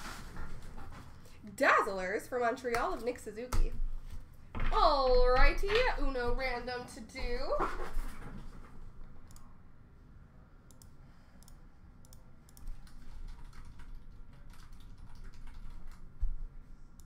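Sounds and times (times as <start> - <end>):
mouse clicking: 10.7 - 13.8
keyboard typing: 10.7 - 16.1.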